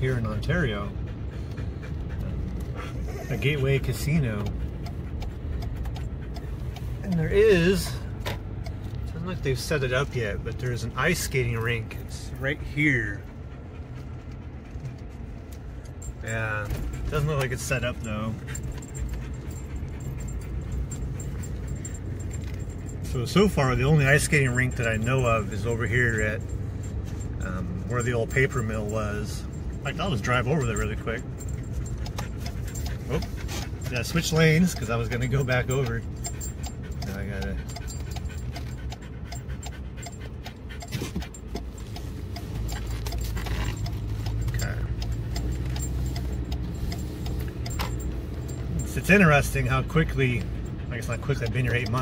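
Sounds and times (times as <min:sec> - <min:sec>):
dog panting: 0:00.0 - 0:52.0
faint jingling ticking: 0:00.0 - 0:52.0
road and engine rumble: 0:00.0 - 0:52.0.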